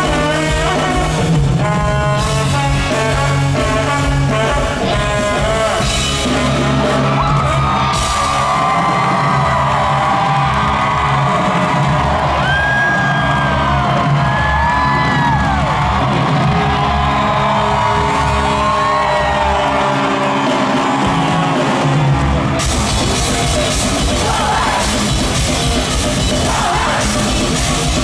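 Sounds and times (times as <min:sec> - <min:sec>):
live ska-punk band playing: 0:00.0 - 0:28.0
crowd whooping and yelling: 0:06.8 - 0:28.0.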